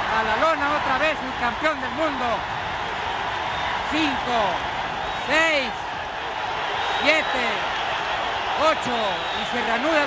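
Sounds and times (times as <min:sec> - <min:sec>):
arena crowd din: 0:00.0 - 0:10.0.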